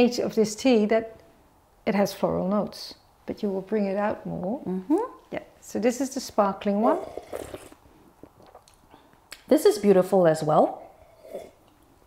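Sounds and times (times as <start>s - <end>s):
person slurping drink: 6.8s - 8.8s, 11.0s - 11.6s
faint mouth clicks: 7.3s - 9.5s.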